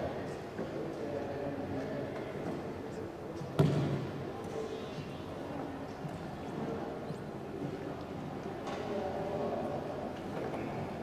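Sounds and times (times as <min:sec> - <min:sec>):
faint murmuring voices: 0:00.0 - 0:11.0
sharp thud with echo: 0:03.6 - 0:04.1.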